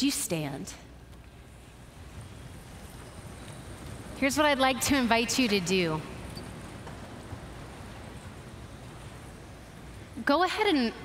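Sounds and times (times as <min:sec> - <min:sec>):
quiet hiss: 0:00.3 - 0:11.0.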